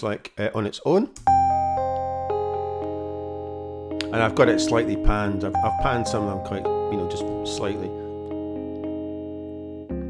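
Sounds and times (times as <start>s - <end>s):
electric piano jazz chords: 1.2s - 10.0s.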